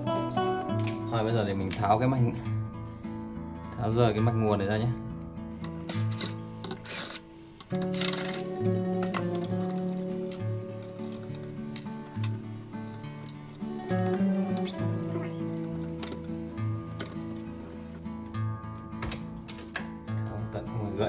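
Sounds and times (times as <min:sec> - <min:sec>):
acoustic guitar music: 0:00.0 - 0:21.0
electric screwdriver whirring: 0:05.8 - 0:07.2, 0:07.8 - 0:08.6.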